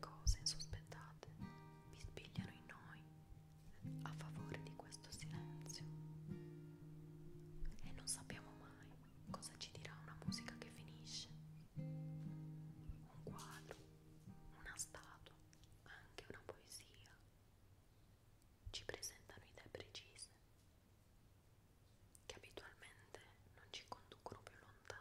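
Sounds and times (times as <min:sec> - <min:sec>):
whispered speech: 0:00.0 - 0:01.4, 0:02.0 - 0:03.0, 0:03.7 - 0:05.9, 0:07.7 - 0:11.4, 0:13.0 - 0:13.9, 0:14.5 - 0:17.2, 0:18.7 - 0:20.4, 0:22.3 - 0:25.0
quiet guitar music: 0:00.0 - 0:17.0.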